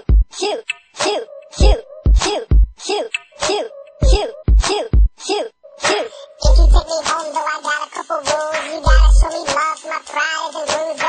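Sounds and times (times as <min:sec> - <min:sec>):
deep kick drum beat: 0:00.0 - 0:00.3, 0:01.6 - 0:02.8, 0:04.0 - 0:05.2, 0:06.5 - 0:06.9, 0:08.9 - 0:09.3.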